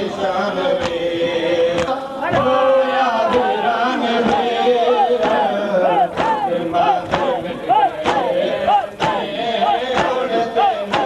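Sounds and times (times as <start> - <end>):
voices chanting a lament: 0.0 - 11.0.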